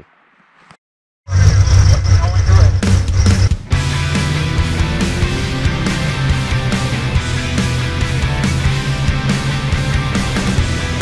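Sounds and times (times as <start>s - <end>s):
heavy rock music: 1.4s - 11.0s.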